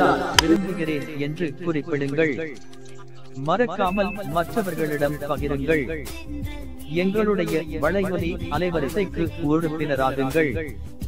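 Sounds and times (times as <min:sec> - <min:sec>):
person sing-song voice: 0:00.0 - 0:01.4, 0:03.8 - 0:10.8.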